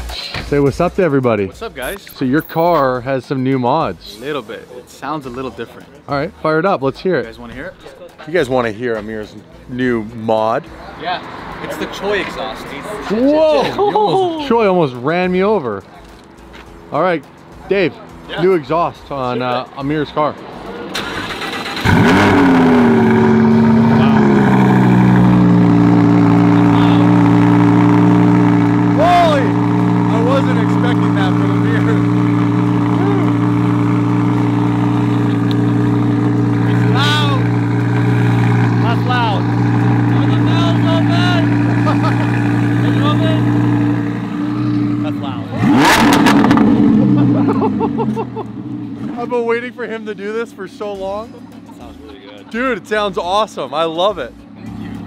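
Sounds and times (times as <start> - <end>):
car engine starting and idling: 9.5 - 55.0.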